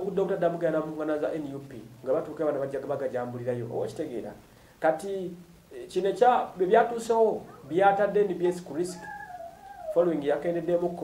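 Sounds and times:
man speaking: 0.0s - 11.0s
faint high wavering call: 8.8s - 10.1s.

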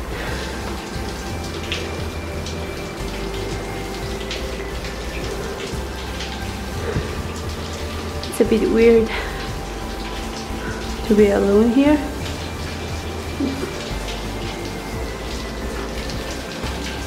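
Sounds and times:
soft background music: 0.0s - 17.0s.

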